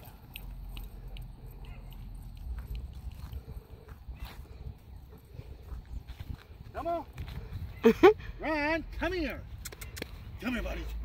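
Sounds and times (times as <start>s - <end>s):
wind rumbling on microphone: 0.7s - 11.0s.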